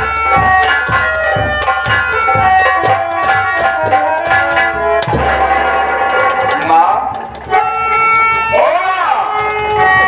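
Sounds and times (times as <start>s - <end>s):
held chords with sliding melody: 0.0s - 10.0s
heavy drum stroke: 0.3s - 7.8s.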